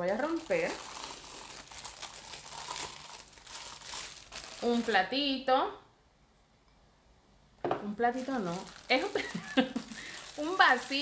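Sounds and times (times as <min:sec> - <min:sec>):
packaging crinkling: 0:00.0 - 0:05.1, 0:08.1 - 0:11.0.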